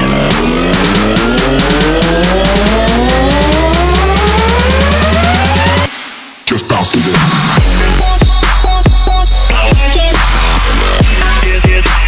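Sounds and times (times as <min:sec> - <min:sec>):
deep bass: 0:00.0 - 0:05.9, 0:07.0 - 0:12.0
rising synth sweep: 0:00.0 - 0:06.4.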